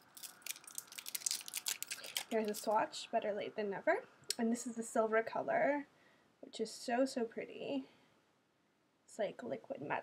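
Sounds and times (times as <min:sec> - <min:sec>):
plastic packaging crinkling: 0:00.0 - 0:02.8.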